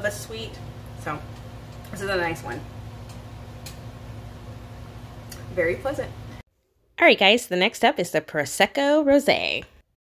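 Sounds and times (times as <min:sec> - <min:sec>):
low electrical hum: 0:00.0 - 0:09.5.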